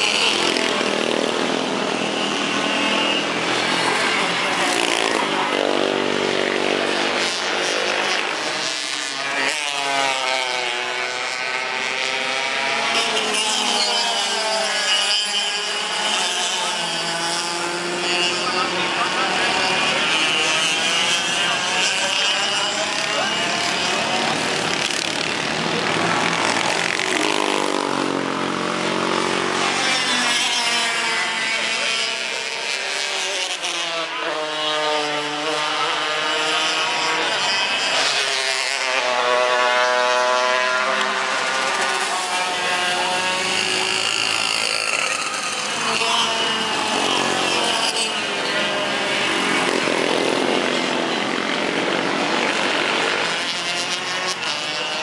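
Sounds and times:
kart engines revving: 0.0s - 55.0s.

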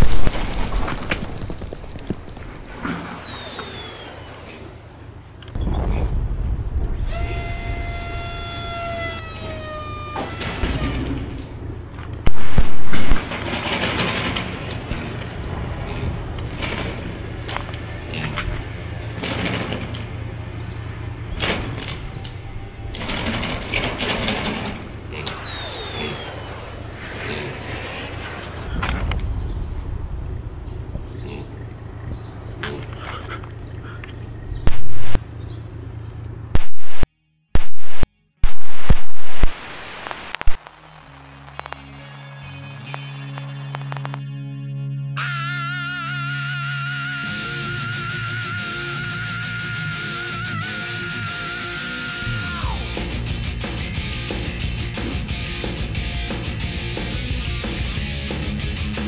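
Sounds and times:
loud sudden bursts: 0.0s - 17.3s, 22.9s - 30.9s, 34.7s - 35.2s, 36.5s - 41.9s
falling whistles: 2.8s - 4.8s, 6.9s - 11.1s, 14.1s - 15.4s, 25.2s - 29.7s.

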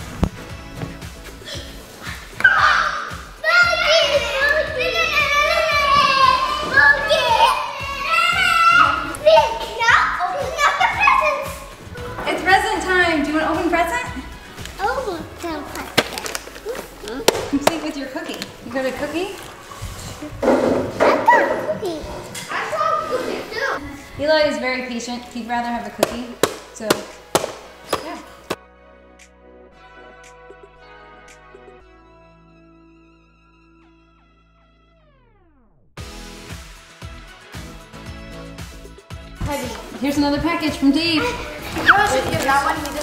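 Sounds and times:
background music: 0.0s - 43.0s
sharp knocks: 26.0s - 28.6s.

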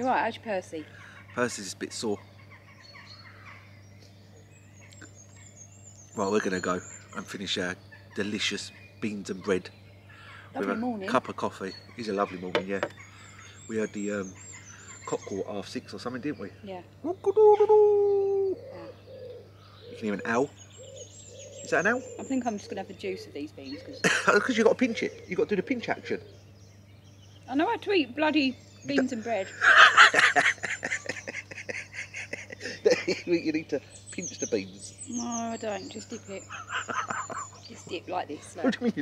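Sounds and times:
faint bird calls: 0.0s - 39.0s
high warbling birdsong: 0.0s - 39.0s
steady low hum: 0.0s - 39.0s.

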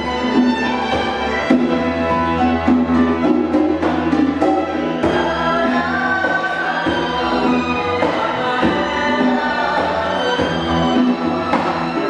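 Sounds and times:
bowed strings: 0.0s - 12.0s
percussion strikes: 0.0s - 12.0s.

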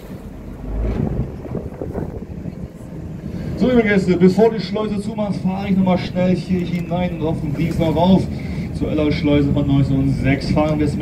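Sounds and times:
wind rumbling on microphone: 0.0s - 6.7s
choppy water slapping: 0.0s - 8.3s
boat running: 0.0s - 11.0s.

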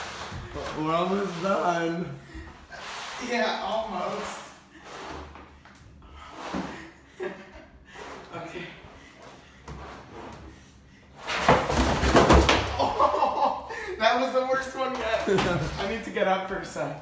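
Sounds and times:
basket thumping down stairs: 11.3s - 13.0s.

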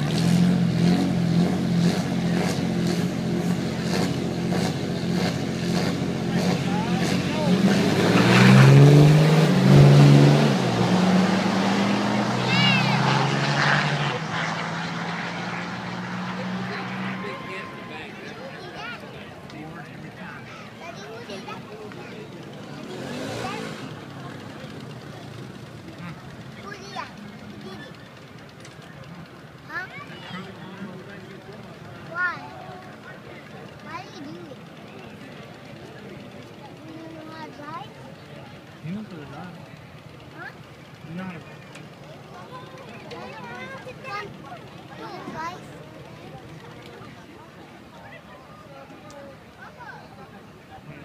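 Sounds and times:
truck engines revving hard: 0.0s - 48.0s
spectators talking: 0.0s - 51.0s
truck engines idling: 0.0s - 51.0s.

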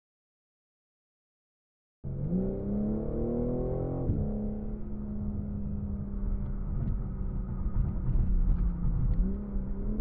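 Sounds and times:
car engine drone: 2.0s - 10.0s
road rumble: 2.1s - 10.0s.

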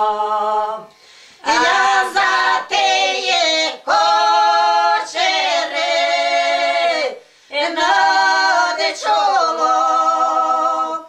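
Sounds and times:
women singing folk song unaccompanied: 0.0s - 11.0s.

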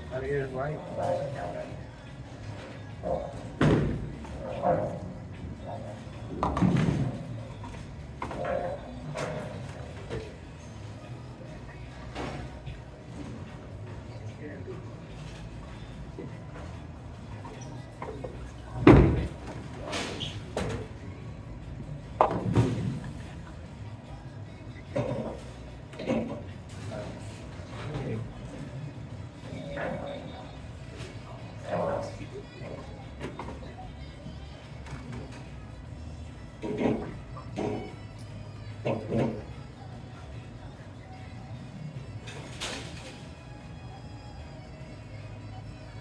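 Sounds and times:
background music: 0.0s - 46.0s.

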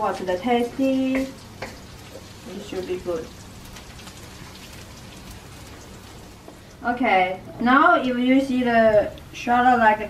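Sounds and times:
shallots sizzling in oil: 0.0s - 7.3s
faint crackles: 0.2s - 6.8s.

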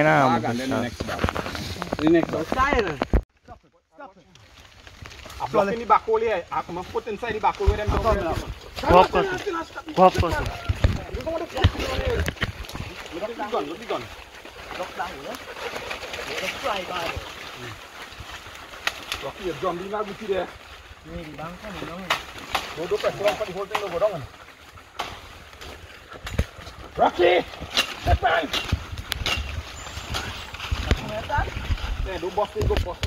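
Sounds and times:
men talking indistinctly: 0.0s - 4.3s, 5.4s - 15.6s, 19.2s - 24.4s, 26.9s - 28.8s, 30.1s - 33.0s
twigs cracking: 0.6s - 33.0s
rustling haze: 4.2s - 33.0s
microphone handling rumble: 10.1s - 13.0s.

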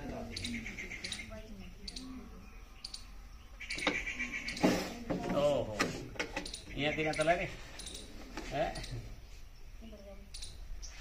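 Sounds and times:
indistinct talk: 0.0s - 10.7s.

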